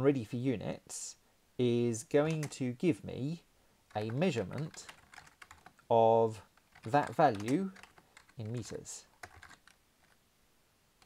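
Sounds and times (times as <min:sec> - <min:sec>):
computer keyboard keystrokes: 0:02.3 - 0:02.6, 0:03.9 - 0:05.8, 0:06.6 - 0:10.2.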